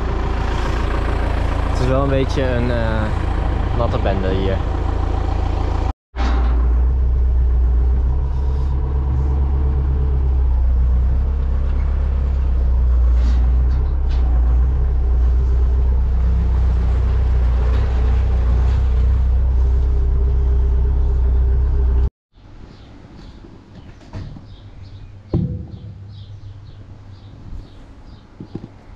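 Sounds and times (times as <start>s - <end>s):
tractor engine running: 0.0s - 22.1s.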